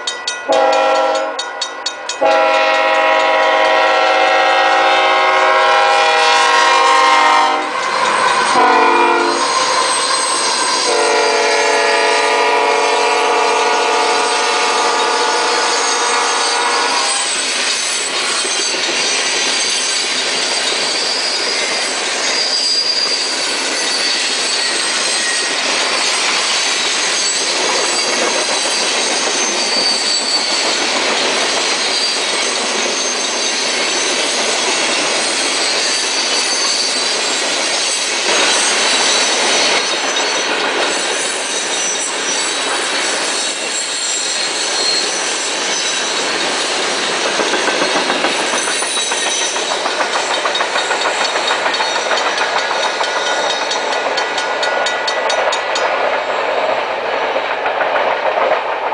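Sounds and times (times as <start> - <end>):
locomotive horn blasts: 0.5 - 1.4, 2.2 - 7.7, 8.6 - 9.4, 10.8 - 17.3.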